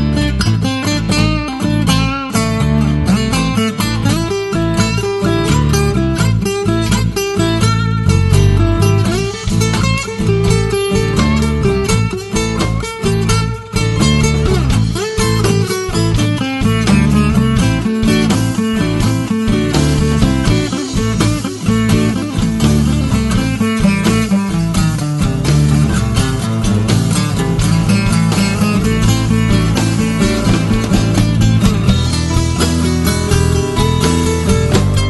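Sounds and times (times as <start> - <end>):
acoustic guitars plucking: 0.0 - 35.0
low bass line: 0.0 - 35.0.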